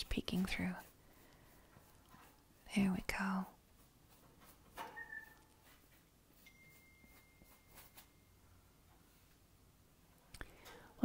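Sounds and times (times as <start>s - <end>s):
paintbrush strokes on canvas: 0.0s - 8.2s
thin high tone: 6.4s - 8.7s.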